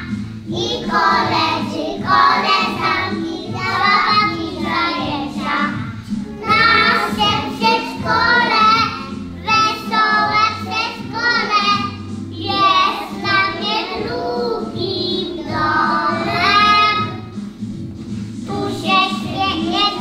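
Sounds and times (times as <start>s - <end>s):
children singing together: 0.0s - 17.4s, 18.4s - 20.0s.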